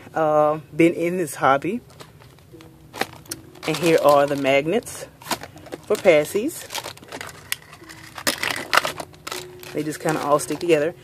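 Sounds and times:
hand rummaging plastic pacifiers: 1.8s - 10.9s.

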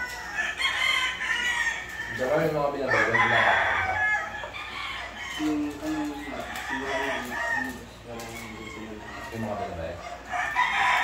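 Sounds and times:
roosters crowing: 0.0s - 11.0s.

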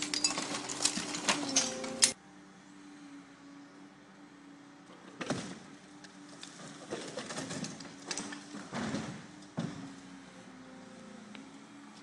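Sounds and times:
masonry crunching and rubble falling: 0.0s - 1.9s, 6.6s - 9.8s
excavator engine hum: 0.0s - 12.0s.

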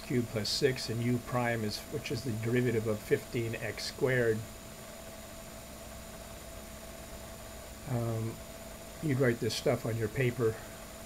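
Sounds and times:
man speaking: 0.0s - 4.5s, 7.8s - 8.4s, 9.0s - 10.7s
faint hum: 0.0s - 11.0s
low background hiss: 0.0s - 11.0s.

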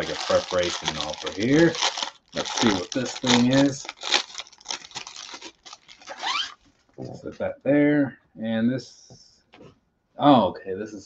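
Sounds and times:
plastic bag crinkling: 0.0s - 6.6s
plastic bag ripping: 0.0s - 6.6s.

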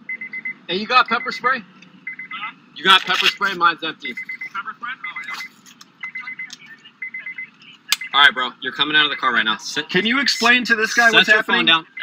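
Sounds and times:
high electronic beeping: 2.0s - 12.0s.

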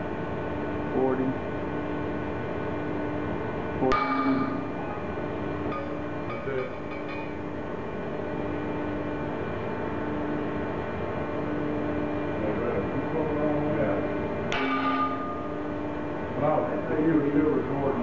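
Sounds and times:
testing machine humming: 2.6s - 18.0s.

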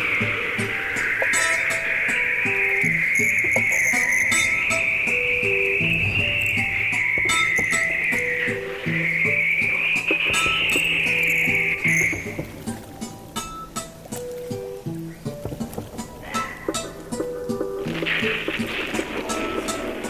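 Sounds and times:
high-pitched chirring hiss: 0.0s - 20.0s
sparse plucked notes: 0.0s - 20.0s.

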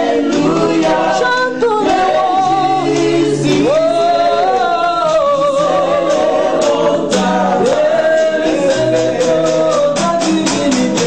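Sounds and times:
woman singing gospel song: 0.0s - 11.0s.

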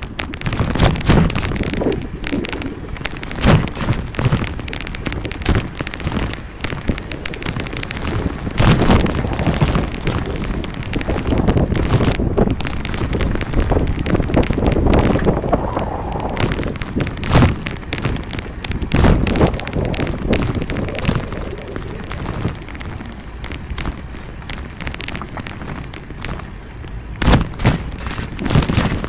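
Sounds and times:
rumbling crackling vibration: 0.0s - 29.0s
wind buffeting microphone: 0.0s - 29.0s.

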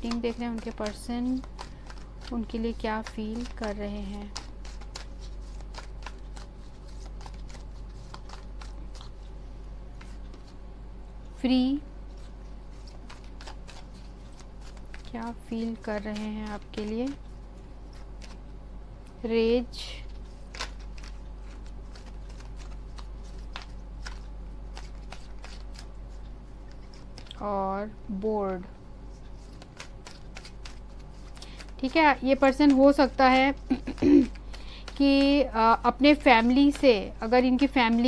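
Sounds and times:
playing cards being shuffled: 0.0s - 9.3s, 9.9s - 10.6s, 12.1s - 17.2s, 17.8s - 18.4s, 20.2s - 27.4s, 28.5s - 38.0s
steady low hum: 0.0s - 38.0s.

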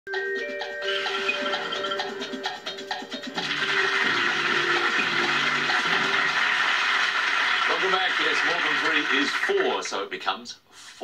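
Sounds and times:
studio audience applauding: 3.3s - 10.1s.

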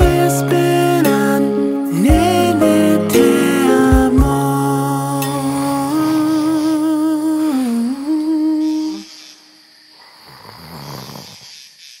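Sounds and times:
person humming: 0.0s - 9.1s
soft breathy sleepy sound: 4.9s - 11.5s.

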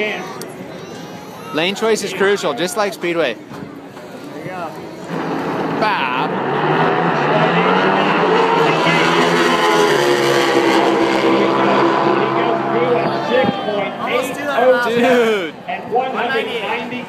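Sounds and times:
drag motorcycles at full throttle: 4.9s - 15.0s.

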